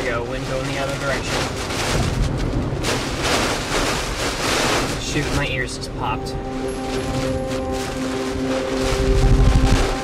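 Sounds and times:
heavy rain and wind on vehicle: 0.0s - 10.0s.

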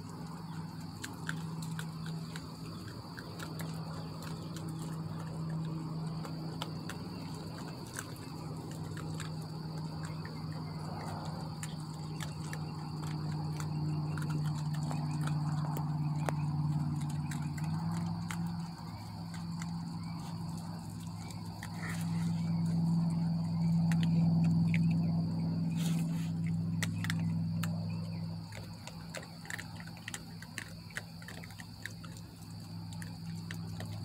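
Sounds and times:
insect trill: 0.0s - 34.0s
raccoons chewing corn kernels: 0.0s - 34.0s.

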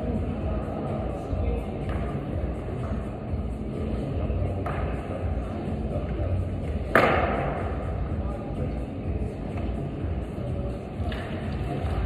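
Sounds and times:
low hum of indoor hall: 0.0s - 12.0s.

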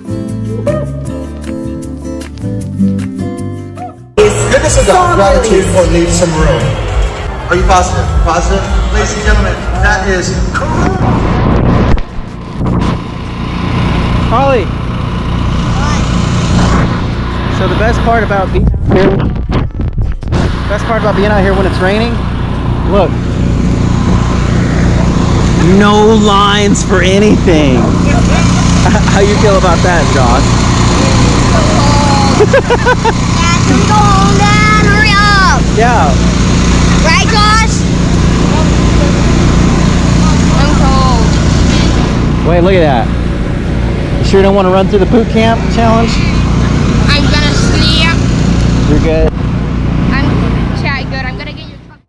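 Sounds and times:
low motor drone: 4.2s - 52.0s
steady low rumble: 4.2s - 52.0s.

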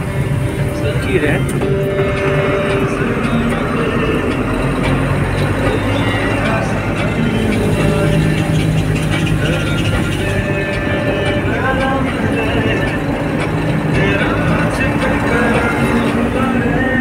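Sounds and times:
vehicle engine and road noise: 0.0s - 17.0s
person talking: 0.7s - 1.8s.

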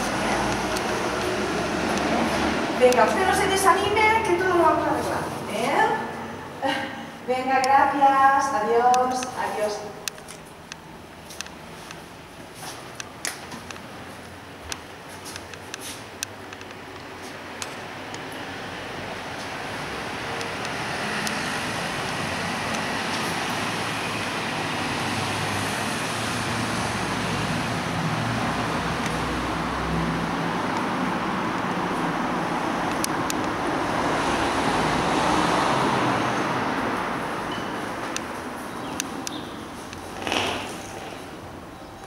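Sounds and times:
vehicle passing: 0.0s - 6.6s, 18.4s - 41.6s.

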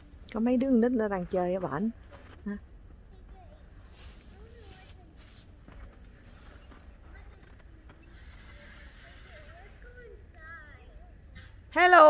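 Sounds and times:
distant children playing and calling: 2.9s - 11.7s.

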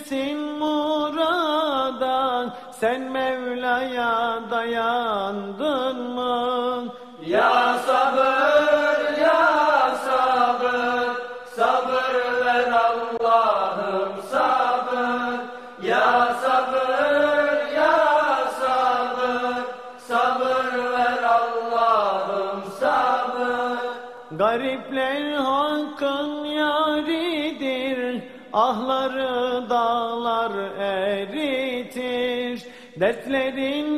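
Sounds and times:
voices singing a hymn unaccompanied: 3.8s - 26.2s.

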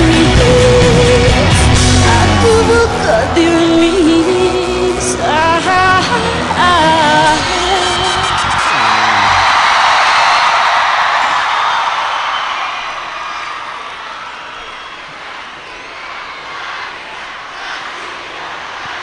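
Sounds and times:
concert crowd cheering and screaming: 0.0s - 19.0s.

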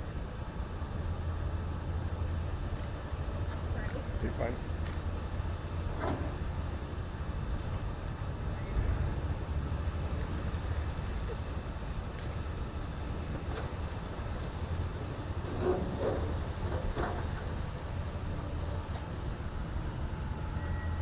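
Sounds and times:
excavator diesel engine rumbling: 0.0s - 21.0s.

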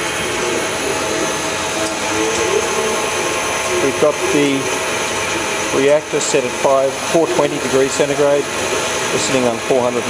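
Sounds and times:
machinery hiss and hum: 0.0s - 10.0s.

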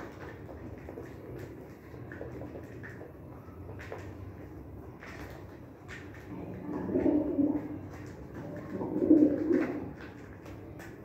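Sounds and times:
pigeon cooing: 6.3s - 10.2s.

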